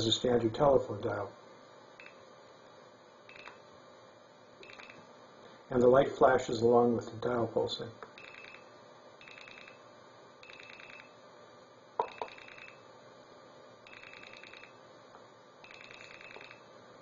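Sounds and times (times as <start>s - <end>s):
pulsed tone through telephone earpiece: 4.6s - 5.0s, 8.2s - 9.8s, 10.4s - 11.2s, 12.0s - 12.8s, 13.9s - 14.8s, 15.6s - 16.7s.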